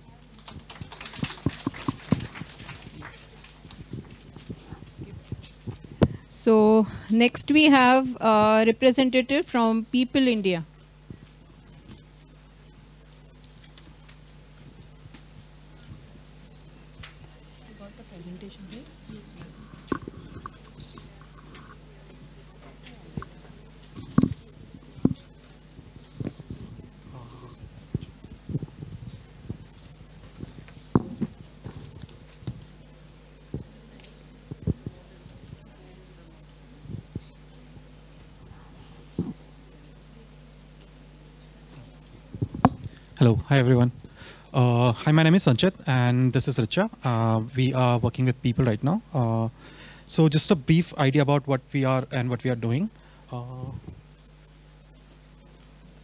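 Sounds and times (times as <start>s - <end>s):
audience applause: 0.2s - 4.2s
microphone handling thumps: 3.6s - 6.4s, 23.2s - 32.7s, 34.5s - 35.6s, 36.8s - 37.4s, 39.1s - 39.4s, 42.1s - 44.2s.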